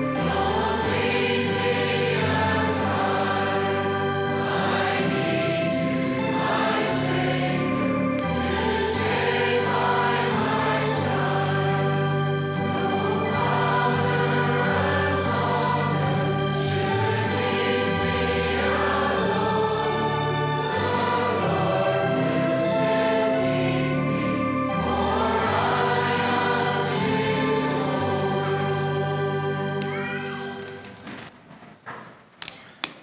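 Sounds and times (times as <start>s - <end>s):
congregation singing a hymn: 0.0s - 31.0s
organ chords: 0.0s - 31.0s.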